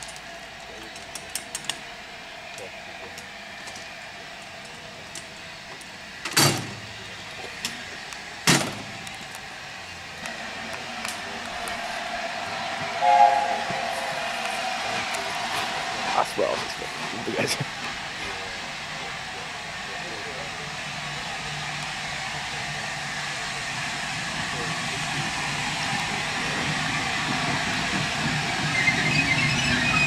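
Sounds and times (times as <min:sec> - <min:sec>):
steady noise: 0:08.2 - 0:16.9
steam locomotive chime whistle: 0:12.9 - 0:15.2.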